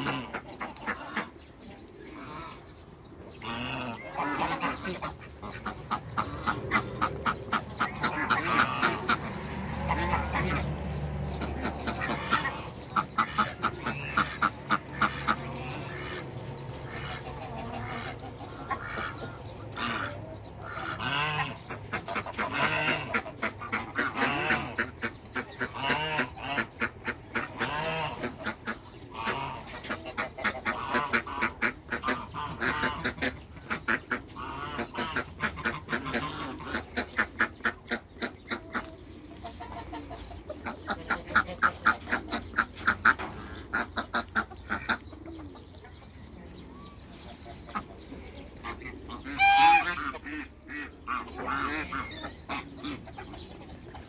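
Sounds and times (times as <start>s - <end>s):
geese honking: 0.0s - 54.0s.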